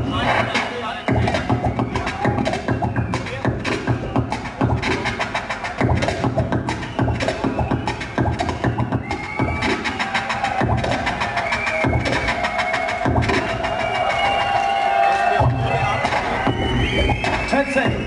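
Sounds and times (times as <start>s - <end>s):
turntable record scratches: 0.0s - 14.2s
drum beat: 0.0s - 18.0s.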